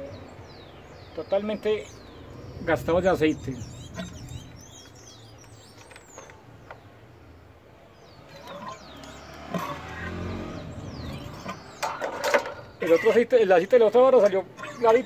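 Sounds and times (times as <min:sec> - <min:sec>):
birds chirping: 0:00.0 - 0:15.0
vehicle passing by: 0:01.9 - 0:05.4, 0:08.0 - 0:12.8.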